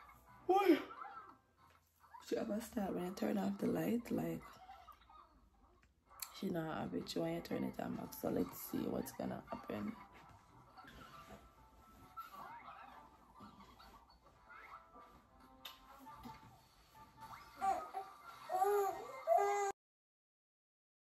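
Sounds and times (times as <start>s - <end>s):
infant fussing cries: 17.3s - 19.7s.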